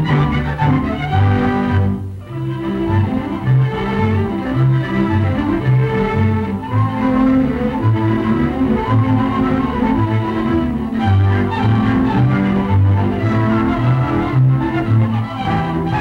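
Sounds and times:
orchestral strings: 0.0s - 16.0s.

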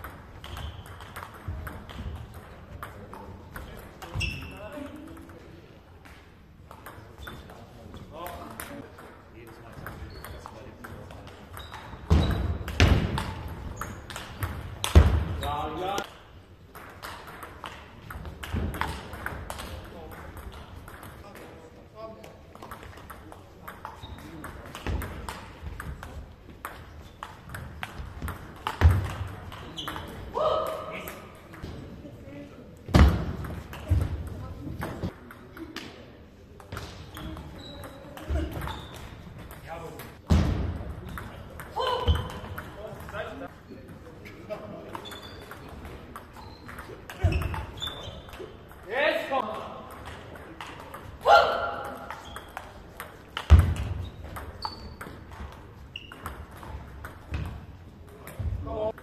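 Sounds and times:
person shouting: 30.4s - 31.0s, 51.2s - 51.7s.

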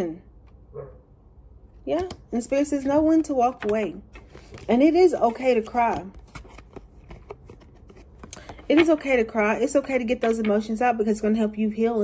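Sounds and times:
cards being shuffled: 3.1s - 9.2s.

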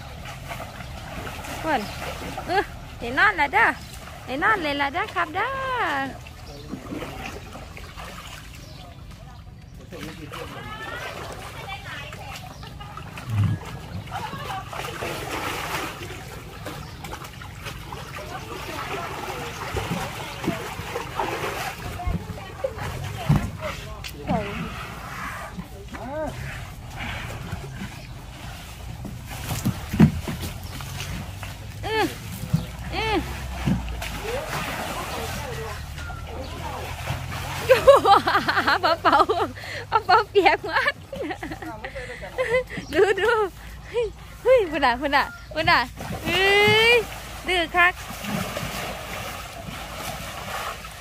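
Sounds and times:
water splashing in a tub: 0.0s - 51.0s.

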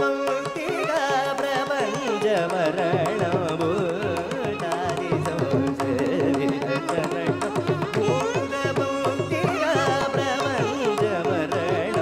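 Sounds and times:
man singing ornamented phrases: 0.0s - 12.0s
violin: 0.0s - 12.0s.

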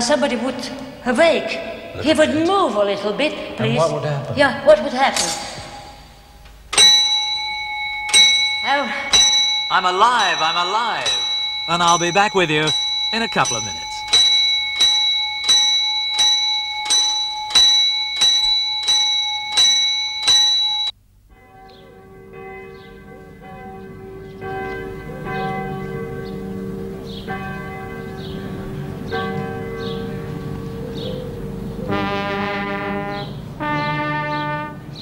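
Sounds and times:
small alarm bell ringing rapidly: 6.7s - 21.7s
slow music with held chords: 20.8s - 35.0s.

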